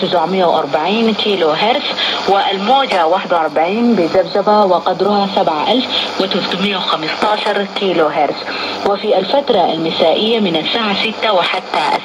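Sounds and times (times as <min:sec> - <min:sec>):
radio speech: 0:00.0 - 0:12.0
static hiss: 0:00.0 - 0:12.0.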